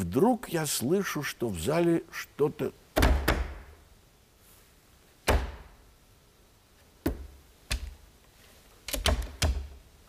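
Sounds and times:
sharp knocks: 3.0s - 3.7s, 5.2s - 5.7s.

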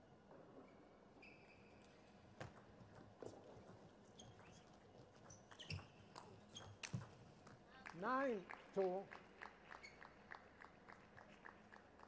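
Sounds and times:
shoes squeaking on floor: 4.2s - 5.9s.

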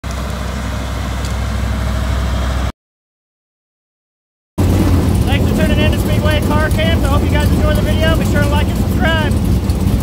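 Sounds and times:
truck engine droning: 0.0s - 2.7s, 4.6s - 10.0s.

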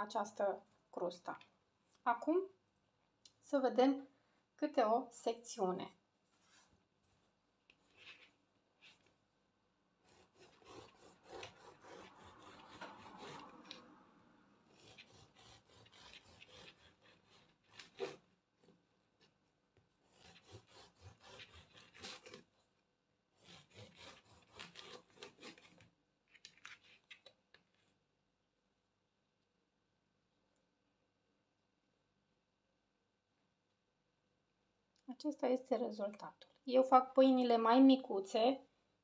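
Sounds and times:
bread knife sawing through loaf: 10.0s - 13.9s, 14.6s - 18.8s, 19.9s - 22.6s, 23.3s - 25.9s.

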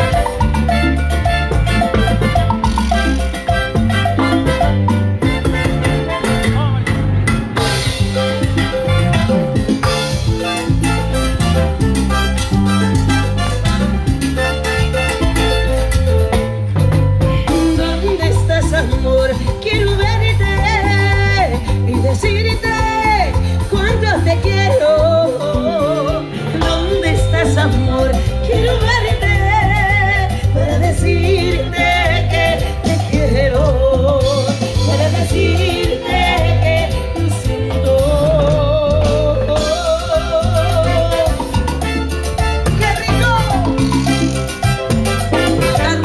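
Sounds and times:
bass line: 0.0s - 46.0s
live band playing instrumental: 0.0s - 46.0s
woman singing: 17.5s - 41.8s, 42.7s - 44.1s, 45.5s - 46.0s.

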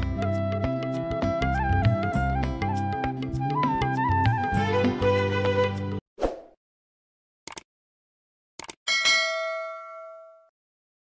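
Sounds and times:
notification bell ding: 8.9s - 10.5s.

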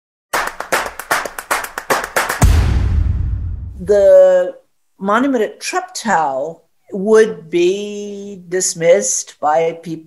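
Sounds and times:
hand claps: 0.3s - 2.6s.

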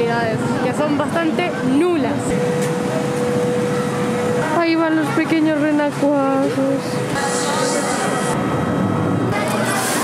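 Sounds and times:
people's voices: 0.0s - 8.4s, 9.2s - 10.0s
amusement ride mechanical running: 0.0s - 10.0s.

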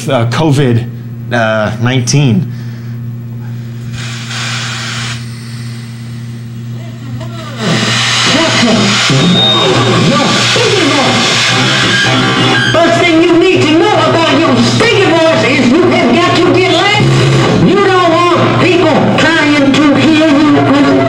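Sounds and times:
low hum: 2.5s - 19.4s
dense noise with wavering pitches: 3.1s - 20.8s.

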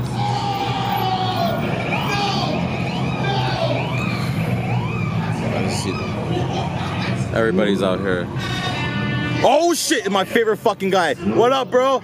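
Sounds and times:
indistinct voices: 0.0s - 7.4s
car engine humming: 0.0s - 8.4s.

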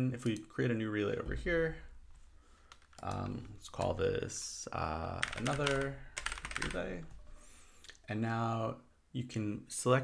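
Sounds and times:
keyboard typing: 5.2s - 7.1s.

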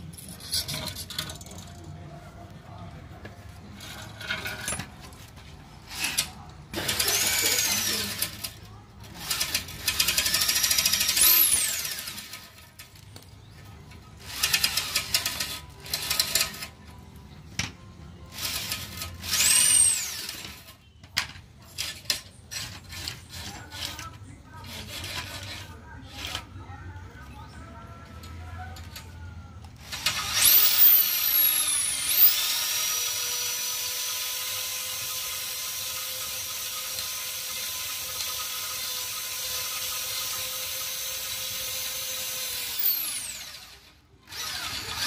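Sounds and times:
wire cable scraping in exhaust pipe: 0.0s - 1.8s, 21.6s - 26.6s.

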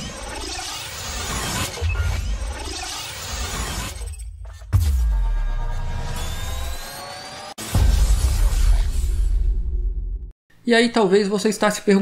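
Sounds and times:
electronic music: 0.0s - 9.0s.

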